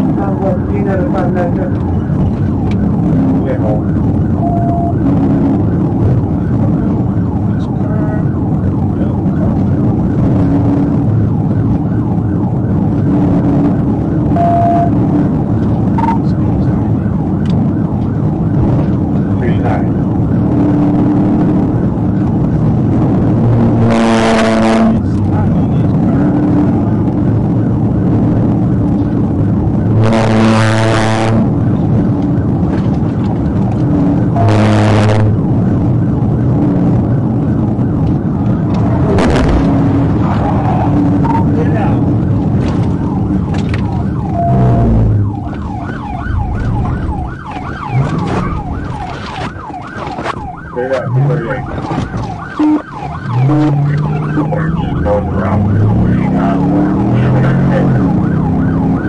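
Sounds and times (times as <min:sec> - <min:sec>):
car engine and road noise: 0:00.0 - 0:59.0
police siren: 0:00.0 - 0:59.0
rising and falling siren yelp: 0:00.0 - 0:59.0
siren blasts: 0:00.0 - 0:59.0.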